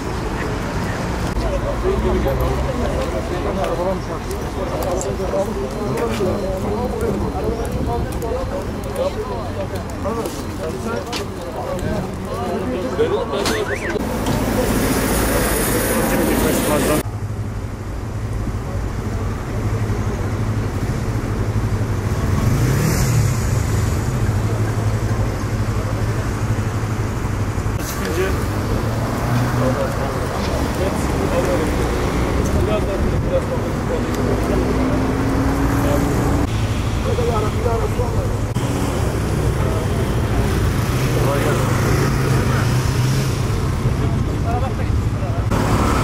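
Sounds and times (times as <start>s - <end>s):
cars passing: 0.0s - 46.0s
vehicle accelerating away: 21.3s - 27.0s, 27.9s - 44.2s, 45.5s - 46.0s.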